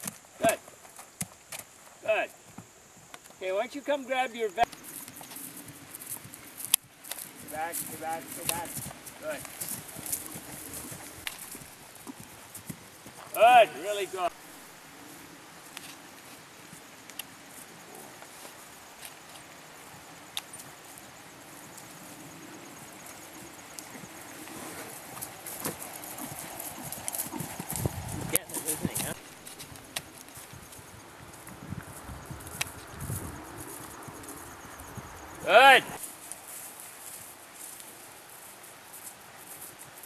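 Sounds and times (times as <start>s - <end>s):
horse hoofbeats on turf: 4.7s - 14.0s, 23.4s - 31.9s.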